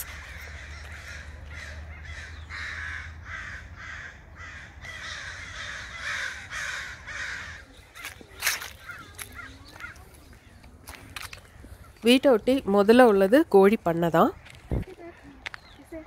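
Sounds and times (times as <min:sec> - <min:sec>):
crows cawing: 0:00.0 - 0:12.2.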